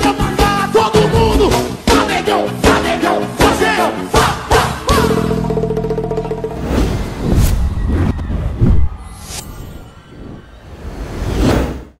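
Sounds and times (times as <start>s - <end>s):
whoosh sound effect: 6.5s - 12.0s.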